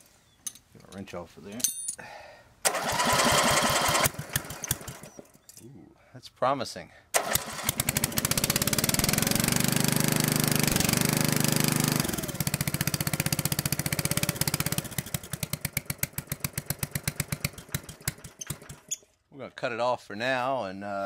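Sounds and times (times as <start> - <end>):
small gas engine running: 2.7 - 5.2, 7.2 - 18.9.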